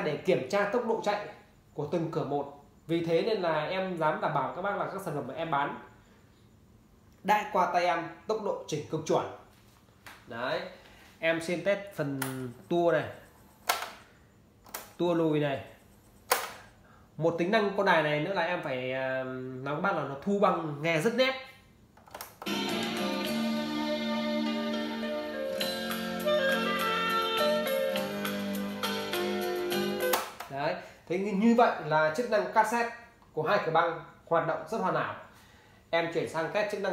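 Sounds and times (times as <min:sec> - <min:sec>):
music from boombox speakers: 0:22.5 - 0:30.1
tape deck stop click: 0:30.0 - 0:30.5.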